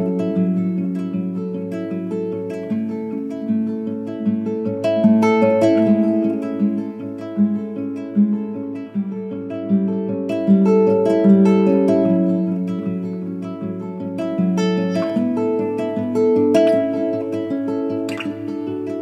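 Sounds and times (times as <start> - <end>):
plucked acoustic guitar: 0.0 - 19.0.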